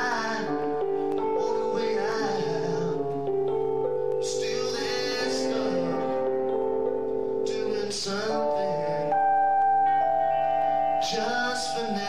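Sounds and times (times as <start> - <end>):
woman singing: 0.0 - 3.2
guitar chords: 0.0 - 12.0.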